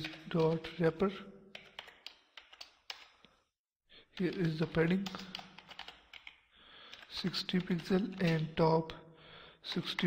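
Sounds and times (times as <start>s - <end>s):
keyboard typing: 1.5s - 3.3s, 4.2s - 8.6s.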